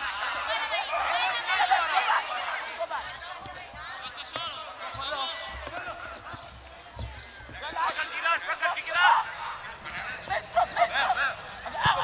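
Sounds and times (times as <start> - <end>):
distant voices calling and shouting: 0.0 - 12.0.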